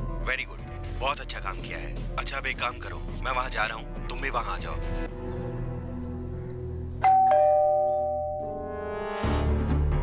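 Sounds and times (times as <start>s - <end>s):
background music: 0.0s - 10.0s
doorbell chiming ding-dong: 7.0s - 8.7s.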